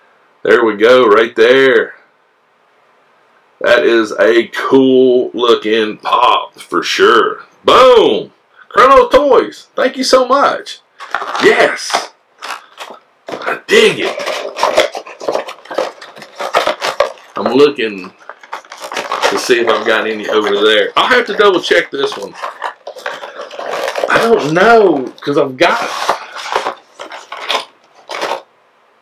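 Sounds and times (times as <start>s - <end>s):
cardboard box and plastic bag handled: 11.0s - 28.5s.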